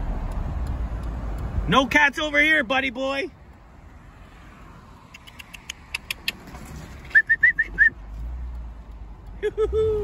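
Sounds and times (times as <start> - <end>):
mouth clicks: 5.0 - 6.4.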